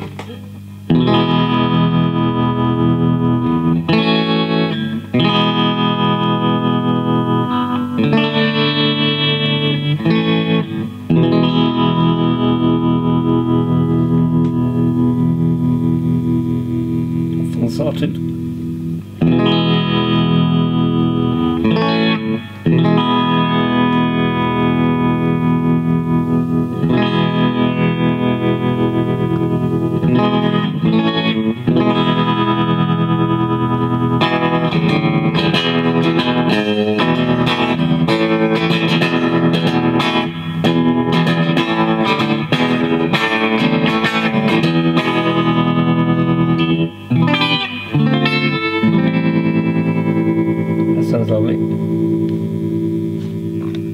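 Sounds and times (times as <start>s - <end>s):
electric guitar with tremolo: 0.0s - 53.9s.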